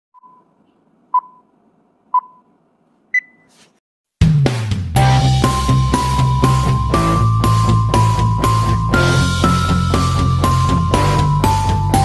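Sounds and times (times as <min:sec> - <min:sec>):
short electronic beeps: 0:03.2 - 0:03.5.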